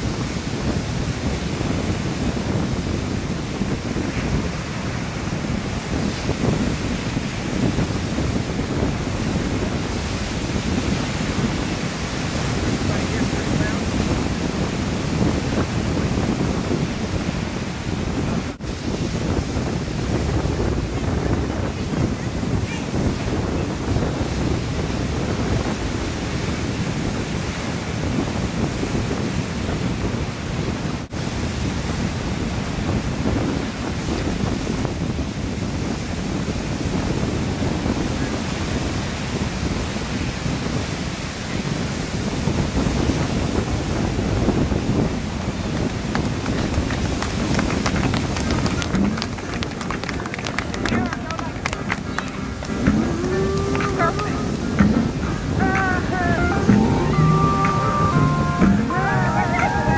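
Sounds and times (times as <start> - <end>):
ocean surf rushing: 0.0 - 59.9
wind buffeting microphone: 0.0 - 59.9.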